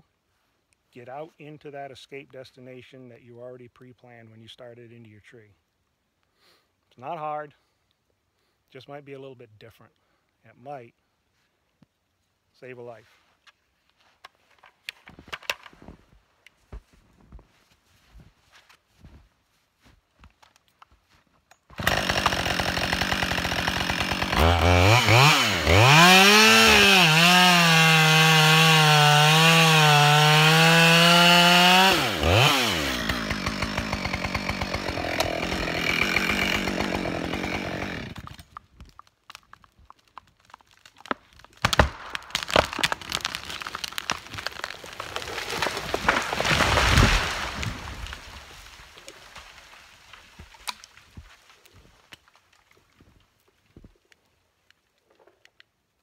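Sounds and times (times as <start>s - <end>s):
tree cracking: 21.6s - 55.2s
chainsaw revving and idling: 21.8s - 38.3s
tree landing with heavy thud: 41.5s - 51.4s.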